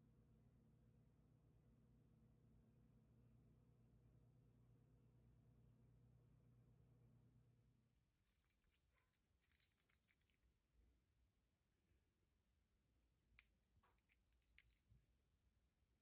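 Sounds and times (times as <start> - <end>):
fishing lures clicking and rattling: 8.2 - 10.5, 13.4 - 15.0.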